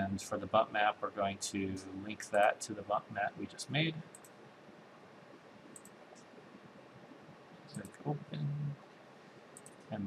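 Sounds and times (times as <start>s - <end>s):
room tone hiss: 0.0s - 10.0s
computer mouse clicks: 4.1s - 4.4s, 5.6s - 6.3s, 9.6s - 9.9s.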